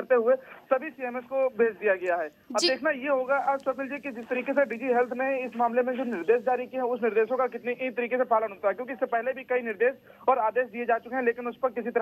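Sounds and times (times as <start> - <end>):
man talking over a phone line: 0.0 - 9.6.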